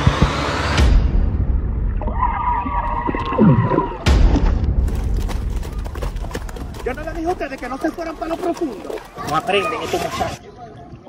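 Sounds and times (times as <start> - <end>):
dull pitched underwater sounds: 1.5 - 4.8
water splash: 2.0 - 10.4.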